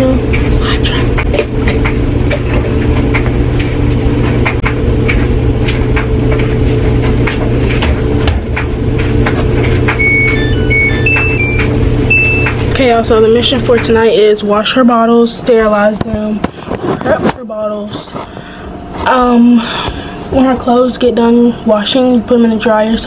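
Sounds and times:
washing machine humming: 0.0s - 23.0s
washing machine clicks: 1.1s - 14.7s
electronic beeps: 10.0s - 12.6s.

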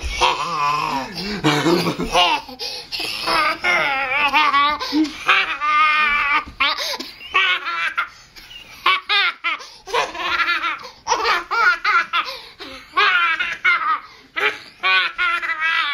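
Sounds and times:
toddler laughing: 0.0s - 15.9s.

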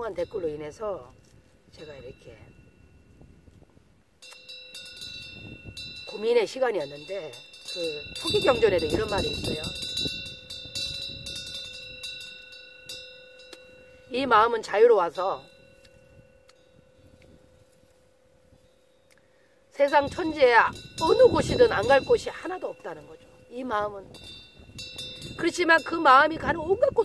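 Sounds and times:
metal wind chime ringing: 0.0s - 3.1s, 4.2s - 19.1s, 19.7s - 27.0s.

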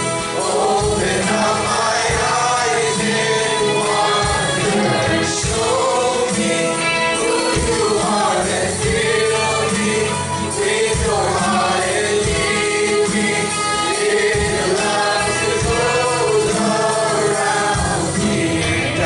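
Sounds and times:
drum kit steady beat: 0.0s - 19.0s
strummed acoustic guitar: 0.0s - 19.0s
voices singing together: 0.0s - 19.0s.

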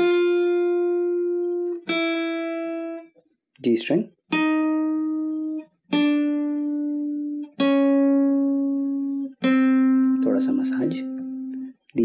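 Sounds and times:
acoustic guitar plucked notes: 0.0s - 12.0s.

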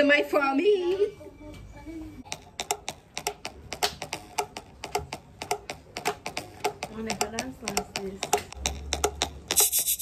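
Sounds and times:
rapid sharp clicks: 2.3s - 9.8s.

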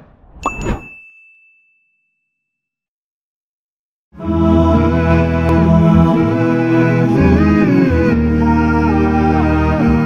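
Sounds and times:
bright bell-like ding: 0.4s - 2.1s.

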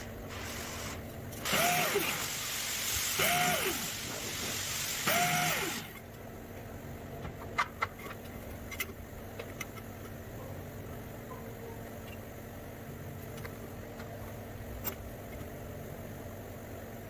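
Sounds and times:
angle grinder bursts: 1.4s - 6.0s.

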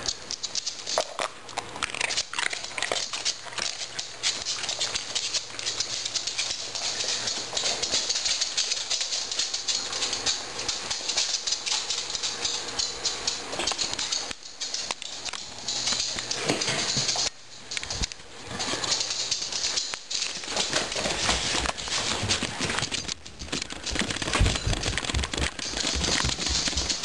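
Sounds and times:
dog claws clicking on wooden floor: 0.0s - 27.0s.

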